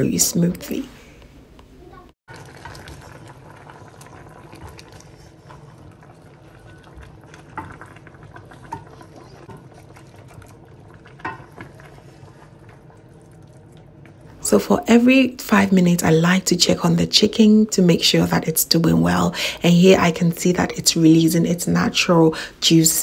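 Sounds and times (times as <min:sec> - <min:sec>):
water bubbling in a pan: 0:02.3 - 0:16.1.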